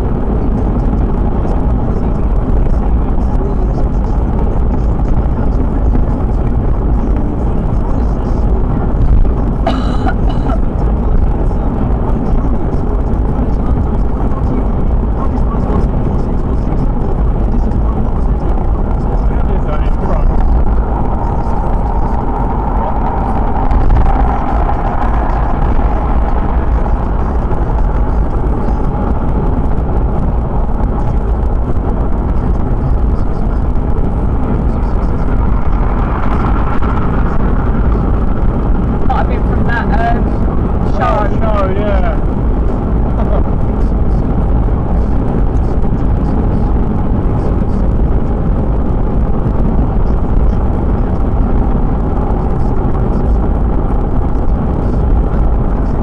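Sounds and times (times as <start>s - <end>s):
car engine: 0.0s - 56.0s
wind noise: 0.0s - 56.0s.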